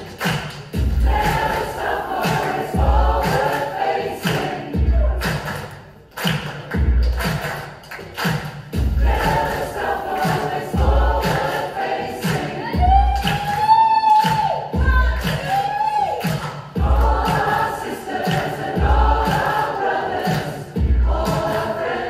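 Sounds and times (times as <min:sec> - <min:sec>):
choir singing: 0:00.8 - 0:05.3, 0:08.9 - 0:13.1, 0:16.8 - 0:22.0.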